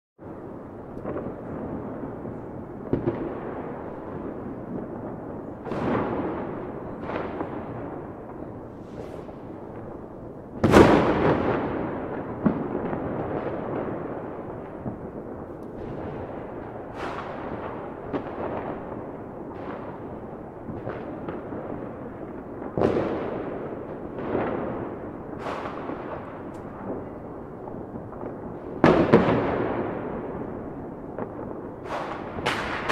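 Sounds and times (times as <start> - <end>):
fireworks bangs: 0.2 - 32.9
fireworks crackling: 0.2 - 32.9
rolling echo: 0.2 - 32.9.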